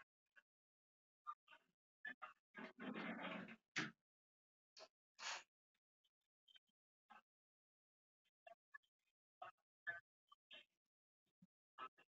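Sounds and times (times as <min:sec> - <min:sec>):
choppy voice over video call: 0:01.3 - 0:04.0.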